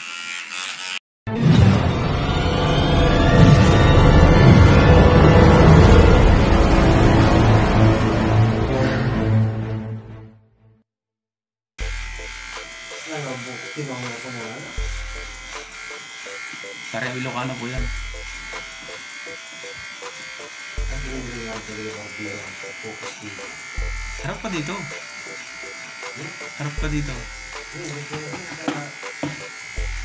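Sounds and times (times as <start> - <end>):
electric hair clipper buzzing: 0.0 - 1.0, 11.8 - 30.0.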